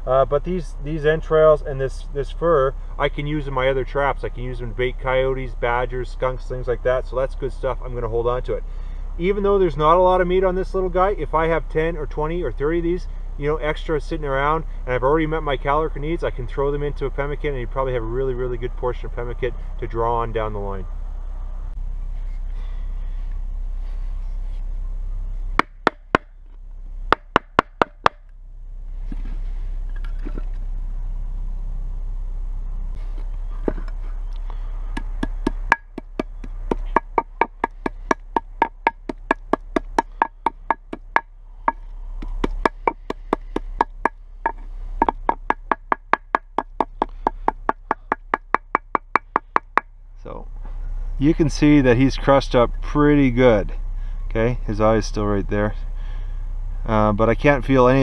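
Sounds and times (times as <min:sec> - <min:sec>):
steady low rumble: 0:00.0 - 0:58.0
wooden stick pounding on stone: 0:25.6 - 0:26.3, 0:27.1 - 0:28.2, 0:35.0 - 0:49.9.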